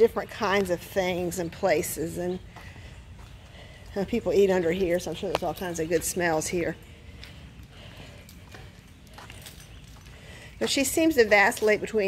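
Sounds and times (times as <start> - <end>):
footsteps on concrete: 0.0 - 12.0
light clicks on concrete: 4.8 - 6.4.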